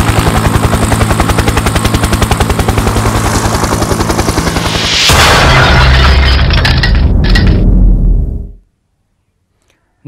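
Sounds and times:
helicopter rotor chopping: 0.0 - 5.2
low engine drone: 1.5 - 5.3.

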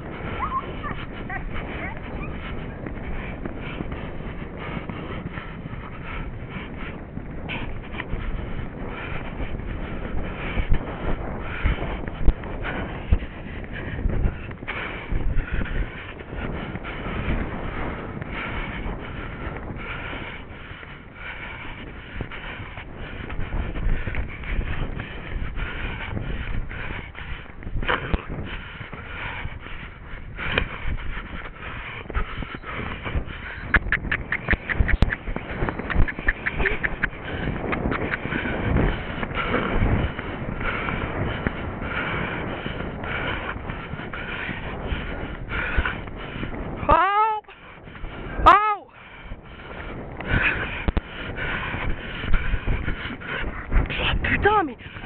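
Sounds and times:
horse hoofbeats galloping on dirt: 0.0 - 55.0
wind rushing over microphone: 0.0 - 55.0.

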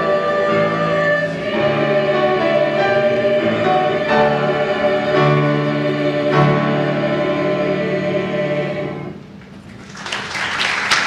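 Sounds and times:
mixed choir singing: 0.0 - 9.3.

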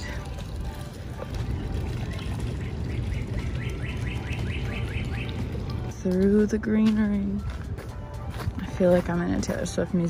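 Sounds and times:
steady low rumble: 0.0 - 10.0
songbird chirping rapidly: 2.1 - 5.6.

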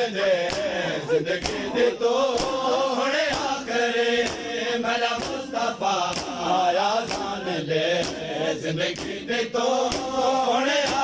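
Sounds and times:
men chanting a lament: 0.0 - 11.0.

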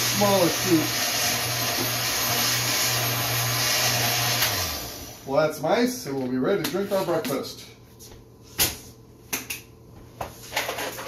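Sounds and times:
blender motor running: 0.0 - 5.3.

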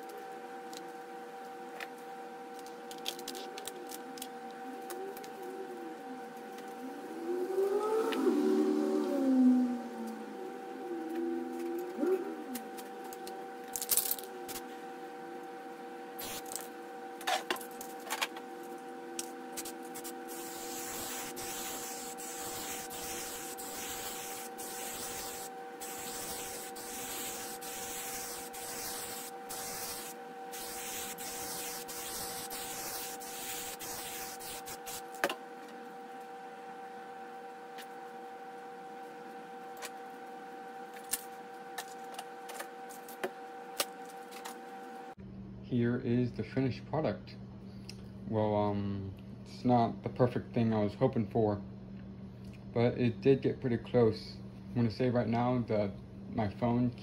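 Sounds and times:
steady faint hum: 0.0 - 57.0
wavering gliding tones: 3.8 - 13.1
spray paint can hissing: 16.2 - 16.6, 19.6 - 35.1.

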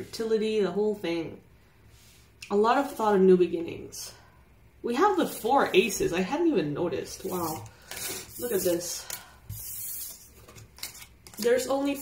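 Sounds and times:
papery rub: 7.2 - 8.9, 9.5 - 12.0
cards sliding on wooden table: 9.5 - 11.0.

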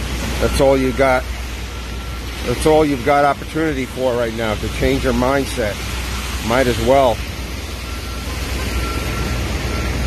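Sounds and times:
low engine rumble: 0.0 - 10.0
tyres hissing on wet road: 0.0 - 10.0
faint high beep: 7.9 - 10.0.

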